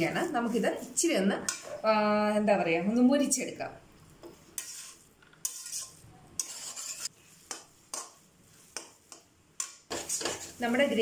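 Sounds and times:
metal spatula scraping a pan: 4.4s - 11.0s.

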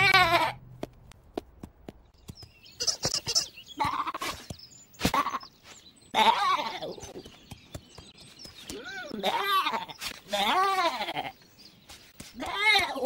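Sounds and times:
cartoon lamb bleating: 0.0s - 0.6s, 2.8s - 4.4s, 9.1s - 11.3s.

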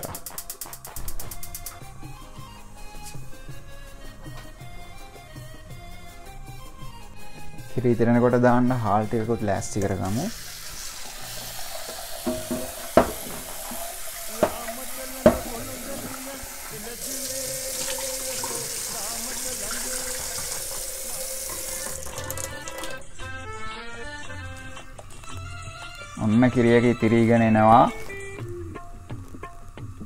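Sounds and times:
background music: 0.0s - 30.0s
kitchen tap running: 9.6s - 23.0s
water poured into steel sink: 10.2s - 23.0s
sharp knocks: 12.2s - 13.5s.

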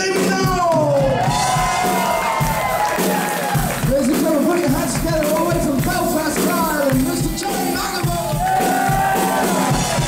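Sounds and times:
live rock band playing: 0.0s - 10.0s
audience cheering and whooping: 0.7s - 4.6s, 6.4s - 10.0s.

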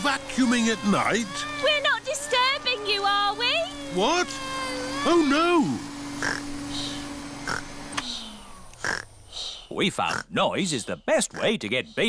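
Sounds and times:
vacuum cleaner humming: 0.0s - 9.4s.

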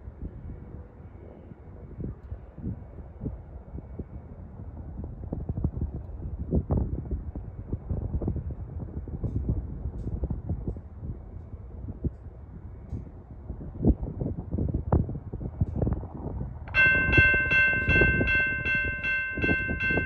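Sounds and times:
wind buffeting microphone: 0.0s - 20.0s
steady low rumble: 14.5s - 20.0s.

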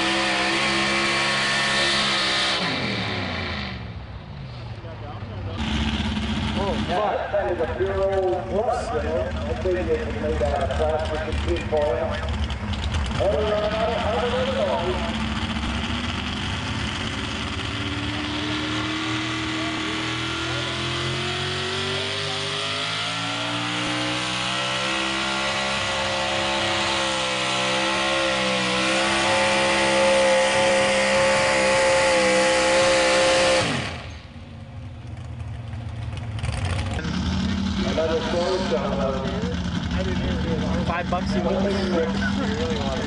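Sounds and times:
truck engine running hard: 0.0s - 43.0s.

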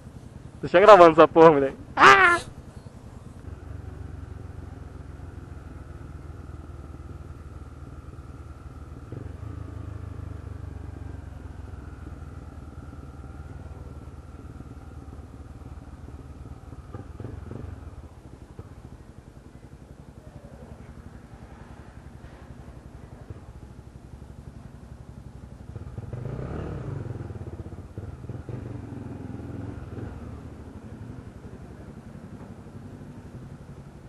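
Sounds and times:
motorcycle engine running: 0.0s - 34.0s.

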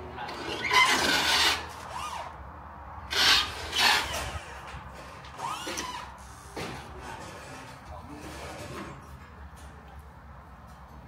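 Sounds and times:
faint squeaky scrapes: 0.2s - 2.3s, 5.0s - 9.2s
hand tool scraping: 0.2s - 2.3s.

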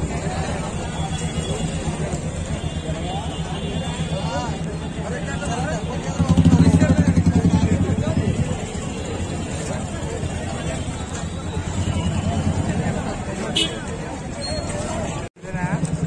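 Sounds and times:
vehicle engine running: 0.0s - 14.2s, 15.4s - 16.0s
crowd chatter: 0.0s - 16.0s.

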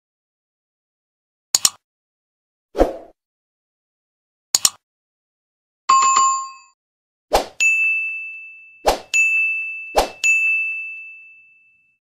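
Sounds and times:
bell-like notification ding: 7.6s - 12.0s.

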